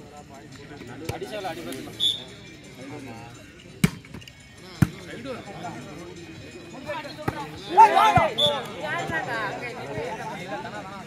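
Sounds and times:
men calling and chattering: 0:00.0 - 0:11.0
volleyball spike smack: 0:03.8 - 0:04.0.

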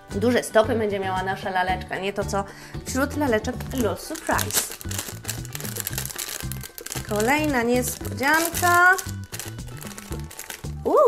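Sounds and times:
background music with bass line: 0:00.0 - 0:11.0
foil sachet crinkling: 0:03.4 - 0:11.0.

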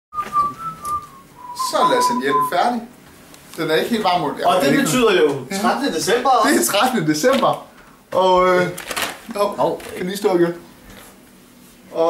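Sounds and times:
thin whistling tone sliding down: 0:00.2 - 0:02.7
man speaking: 0:01.6 - 0:02.9, 0:03.7 - 0:07.5.

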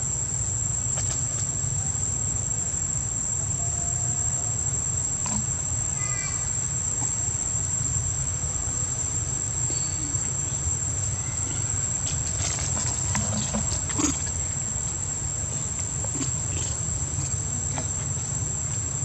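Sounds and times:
high-pitched insect drone: 0:00.0 - 0:19.0
faint clicks and rustles: 0:11.5 - 0:18.9.

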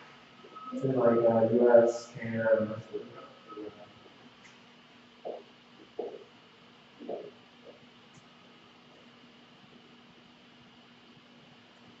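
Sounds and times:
faint murmur: 0:00.0 - 0:04.4, 0:05.2 - 0:07.8
faint steady hum: 0:00.0 - 0:12.0.

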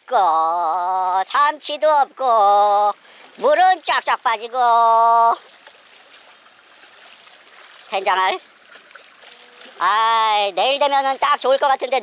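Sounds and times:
small waves lapping against rocks: 0:00.0 - 0:12.0.

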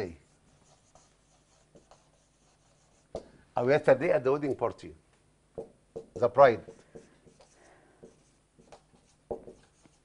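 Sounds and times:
marker pen writing on whiteboard: 0:00.0 - 0:03.4, 0:05.6 - 0:10.0.

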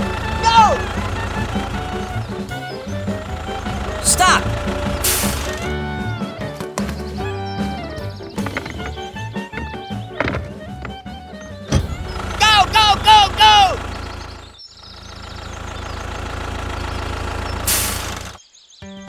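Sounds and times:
low engine-like drone: 0:00.0 - 0:06.0, 0:11.7 - 0:18.4
background music with melody: 0:00.0 - 0:12.3.

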